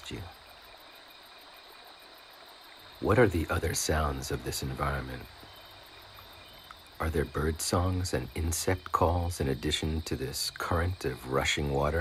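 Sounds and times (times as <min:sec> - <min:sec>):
crickets chirping: 0:00.0 - 0:12.0
running water: 0:00.0 - 0:12.0.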